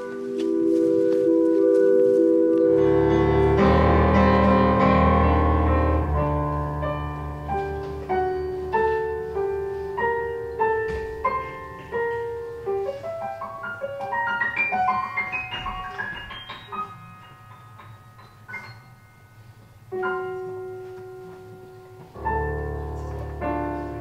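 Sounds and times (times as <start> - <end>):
solo piano: 0.0 - 24.0.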